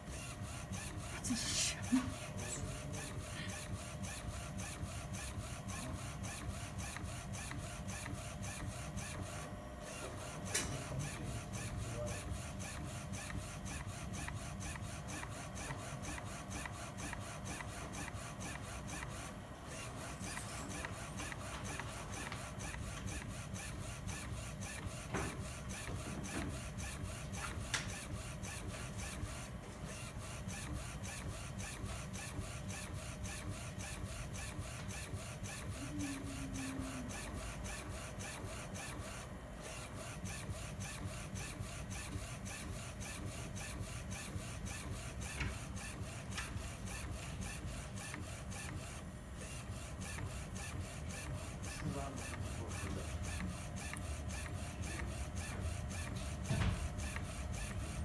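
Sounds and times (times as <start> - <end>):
printer running with fine ticking: 0.0 - 58.0.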